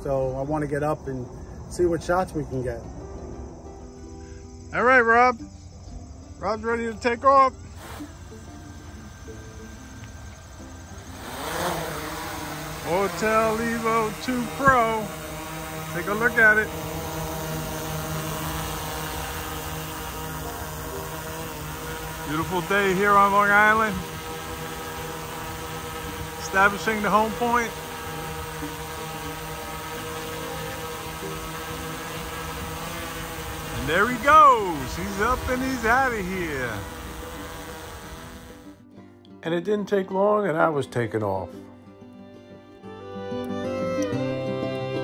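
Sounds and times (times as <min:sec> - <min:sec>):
drone motors whining: 0:07.6 - 0:38.8.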